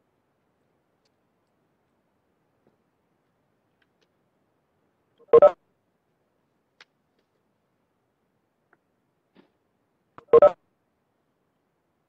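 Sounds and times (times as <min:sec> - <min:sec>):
electronic two-note beep: 0:05.3 - 0:05.6, 0:10.3 - 0:10.6.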